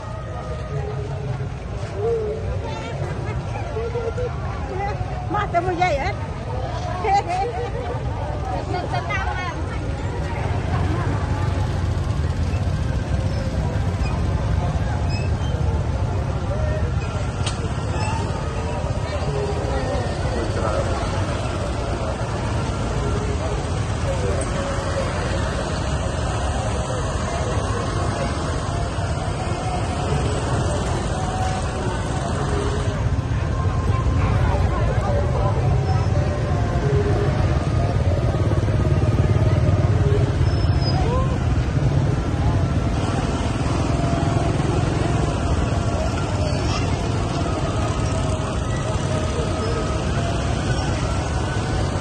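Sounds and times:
crowd chatter: 0:00.0 - 0:52.0
motorbike engines running: 0:00.0 - 0:52.0.

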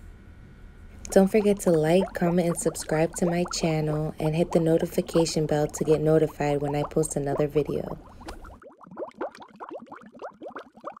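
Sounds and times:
rapid rising bubbling bloops: 0:01.1 - 0:11.0.

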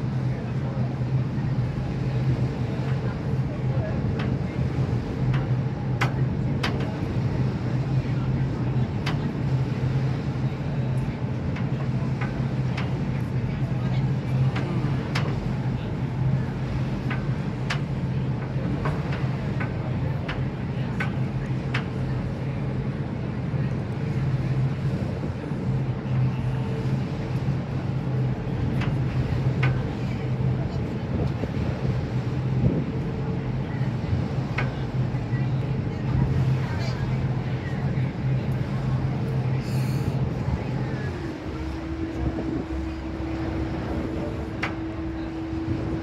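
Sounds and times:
boat engine droning: 0:00.0 - 0:46.0
water and wind noise: 0:00.0 - 0:46.0.

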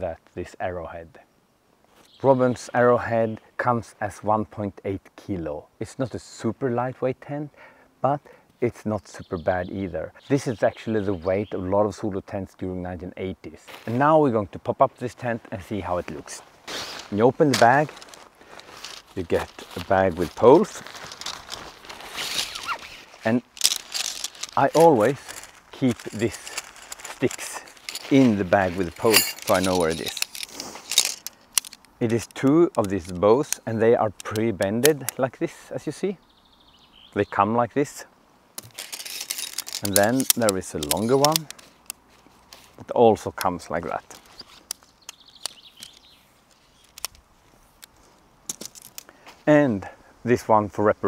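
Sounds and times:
nylon bag rustling: 0:16.6 - 0:31.8, 0:38.6 - 0:42.8
tent pole sections clicking: 0:17.1 - 0:35.4, 0:38.6 - 0:49.2
bird call: 0:22.2 - 0:23.0.

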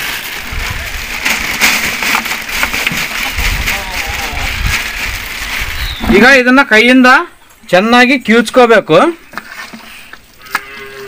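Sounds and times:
plastic sheet rustling and crinkling: 0:00.0 - 0:06.6
clumps dropping into plastic bucket: 0:01.1 - 0:05.6.

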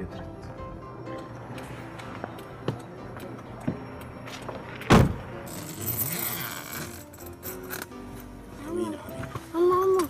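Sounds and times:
background music: 0:00.0 - 0:10.0
car door shutting: 0:04.6 - 0:05.4.

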